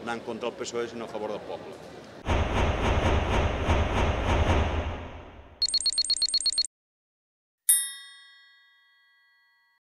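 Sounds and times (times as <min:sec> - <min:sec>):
bell-like ding ringing: 0:07.7 - 0:09.8.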